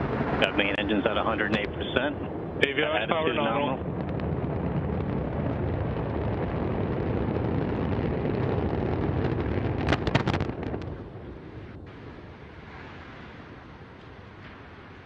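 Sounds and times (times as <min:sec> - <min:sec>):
heavy rumble of burning rocket: 0:00.0 - 0:15.0
loud sharp cracks: 0:09.2 - 0:11.0.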